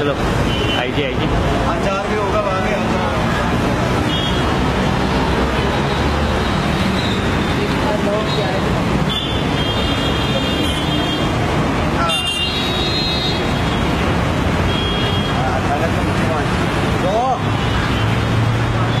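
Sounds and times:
street traffic: 0.0s - 19.0s.

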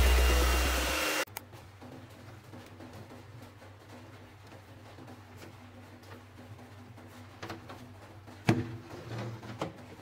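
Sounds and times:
hair dryer running: 0.0s - 1.3s.

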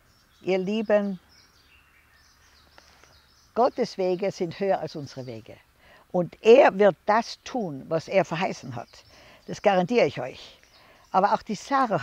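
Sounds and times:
birds chirping: 0.0s - 12.0s
woman speaking: 0.4s - 1.2s, 3.6s - 12.0s.

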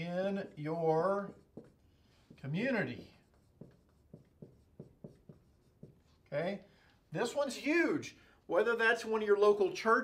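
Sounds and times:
marker writing on whiteboard: 0.0s - 6.6s.

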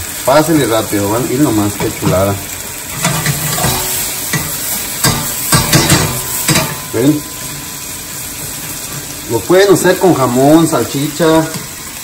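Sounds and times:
vegetables sizzling in a frying pan: 0.0s - 12.0s
spatula knocking on pan: 3.0s - 6.9s.

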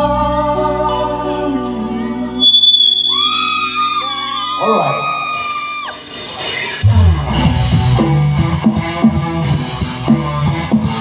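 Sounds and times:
man singing: 0.0s - 2.4s
electric guitars and bass: 0.0s - 11.0s.

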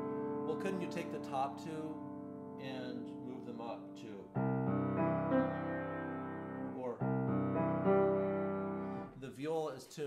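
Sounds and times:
grand piano chords: 0.0s - 9.2s.

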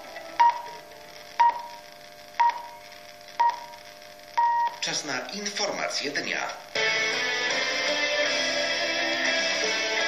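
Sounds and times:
faint steady tones: 0.0s - 5.0s
radio time signal beeps: 0.4s - 4.9s.

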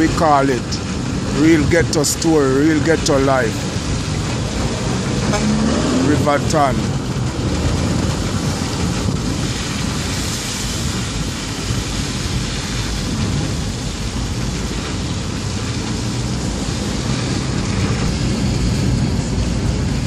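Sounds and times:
car interior road and engine rumble: 0.0s - 20.0s
wind noise: 0.0s - 20.0s.

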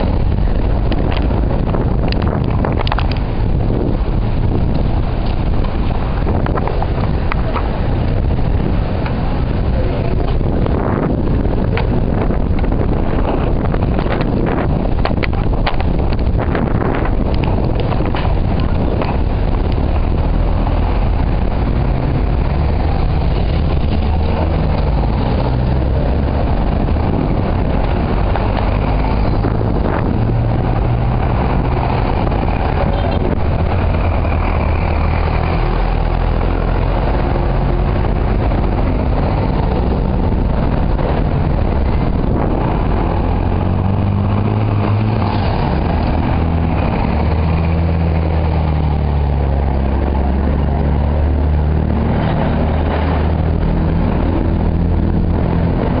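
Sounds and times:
bicycle tyres rolling on asphalt: 0.0s - 56.0s
wind buffeting microphone: 0.0s - 56.0s.

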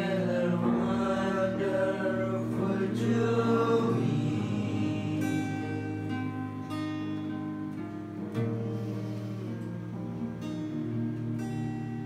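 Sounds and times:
voices singing together: 0.0s - 6.6s
acoustic guitar: 0.0s - 12.0s
keyboard: 0.0s - 12.0s.

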